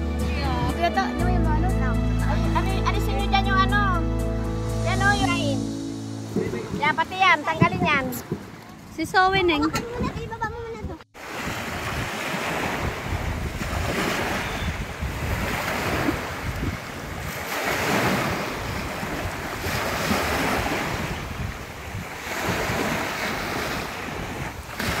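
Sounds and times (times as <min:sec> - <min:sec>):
wind buffeting microphone: 0:06.2 - 0:25.0
waves breaking on beach: 0:11.2 - 0:25.0.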